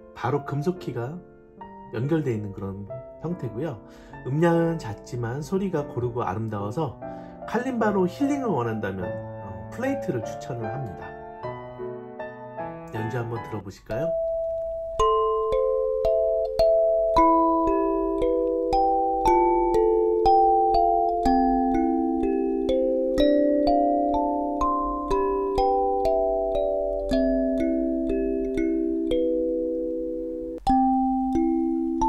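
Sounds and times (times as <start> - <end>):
kalimba notes plucked: 14.0 - 32.0.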